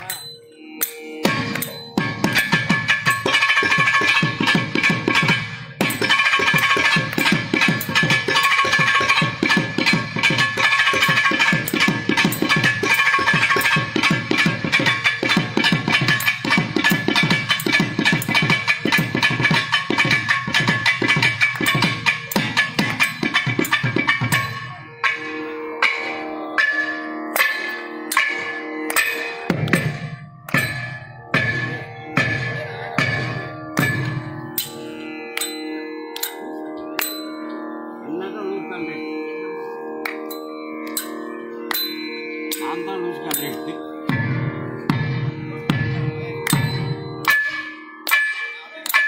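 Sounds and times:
ringing drum strokes: 0.0s - 39.0s, 40.3s - 49.0s.

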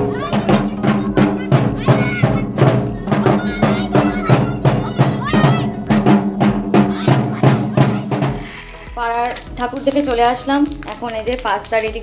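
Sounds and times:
music with steady drum beat: 0.0s - 12.0s.

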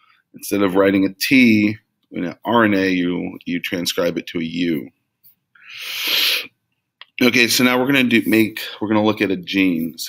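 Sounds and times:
man breathing noisily: 5.6s - 6.5s.

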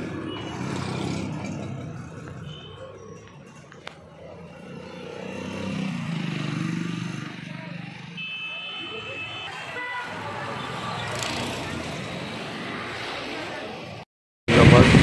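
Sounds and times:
street traffic: 0.0s - 15.0s.

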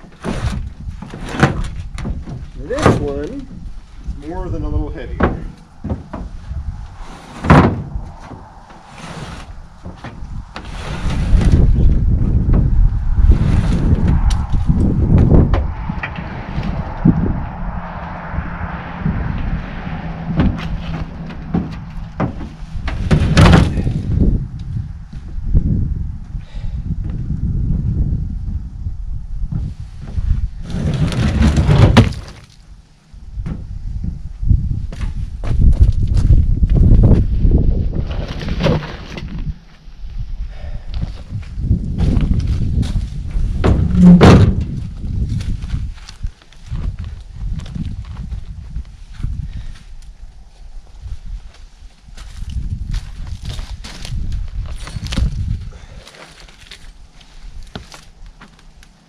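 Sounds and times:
wood scraping and clatter: 0.0s - 16.8s, 20.3s - 25.3s, 29.6s - 32.6s, 38.0s - 39.7s, 41.2s - 49.7s, 52.2s - 59.0s
log knocking on wooden skids: 5.2s - 6.4s, 20.2s - 24.1s.

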